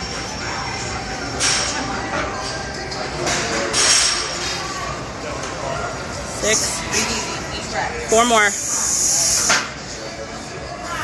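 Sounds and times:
gym background noise: 0.0s - 11.0s.

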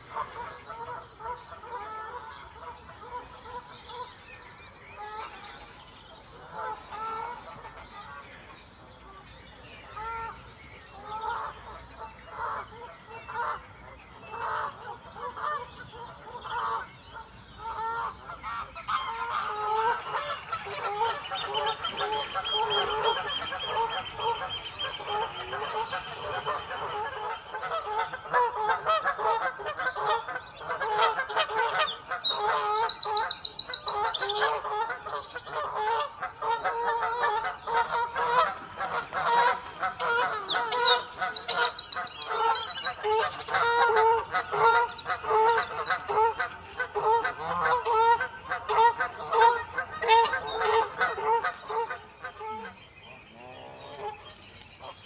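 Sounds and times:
geese honking: 14.3s - 52.8s
oystercatchers piping: 14.3s - 55.0s
wren trilling: 31.8s - 34.7s, 40.3s - 43.0s.

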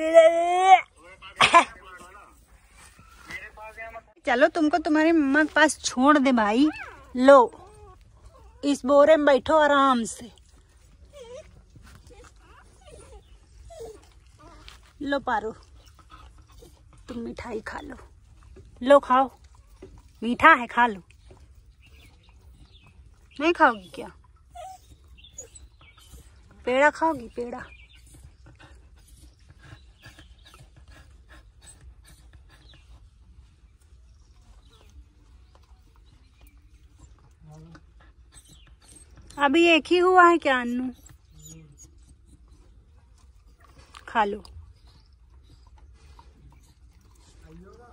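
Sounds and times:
dog panting: 4.8s - 47.9s
puppy whimpering: 11.0s - 14.7s, 23.6s - 31.0s, 36.4s - 39.4s, 40.5s - 42.7s.

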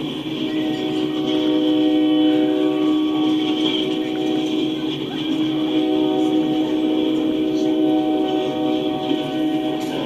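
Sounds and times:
freight train rolling past: 0.0s - 10.0s.

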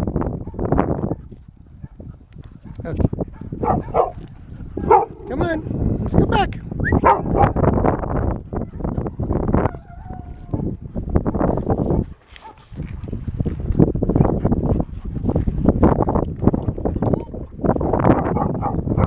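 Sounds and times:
dogs panting: 0.5s - 19.0s
footsteps on gravel: 2.3s - 6.1s, 11.4s - 16.5s.

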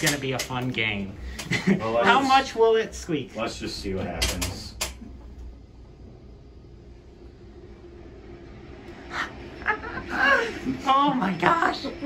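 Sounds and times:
elevator low rumble: 0.0s - 12.0s.

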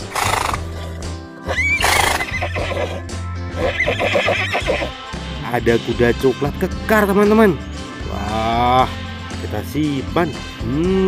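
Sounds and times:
horse neighing: 0.0s - 5.0s
background music with low bass: 0.0s - 11.0s.

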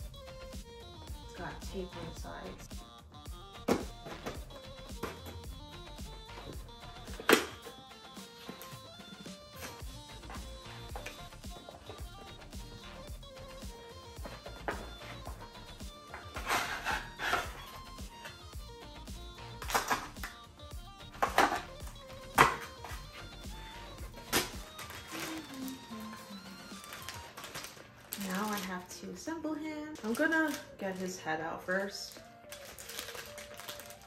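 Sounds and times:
background music: 0.0s - 34.0s.

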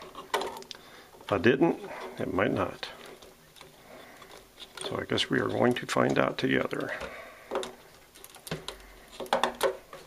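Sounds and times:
faint handling noise: 0.0s - 10.0s.

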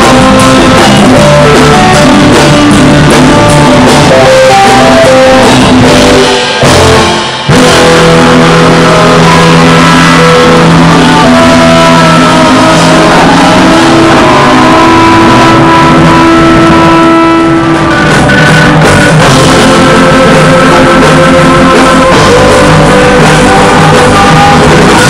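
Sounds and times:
drums: 0.0s - 25.0s
electric guitar: 0.0s - 25.0s
rock band playing live: 0.0s - 25.0s.

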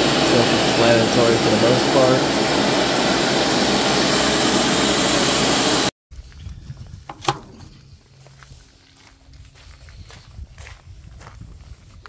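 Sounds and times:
faint footsteps: 6.2s - 12.0s.

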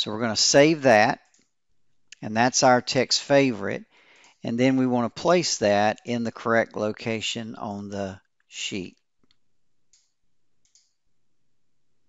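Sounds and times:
computer mouse click: 9.2s - 11.0s.

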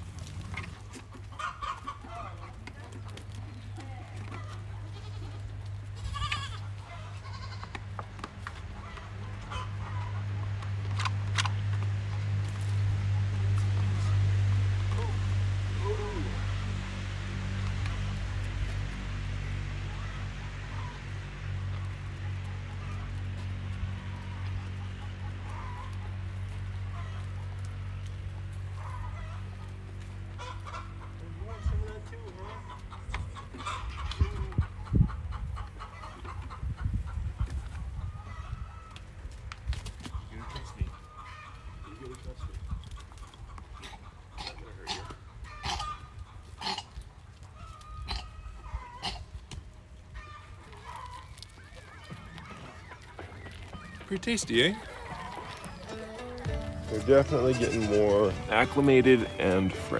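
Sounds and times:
chickens clucking: 0.0s - 59.9s.

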